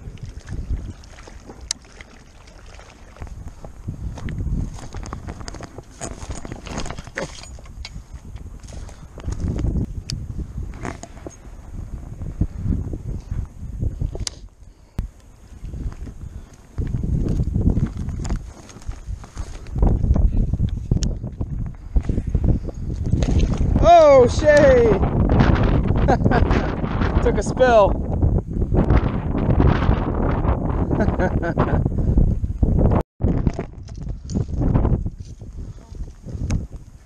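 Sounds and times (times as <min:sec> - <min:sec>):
wind buffeting microphone: 0:00.0 - 0:37.0
footsteps on rocky ground: 0:03.2 - 0:11.4, 0:15.0 - 0:23.8.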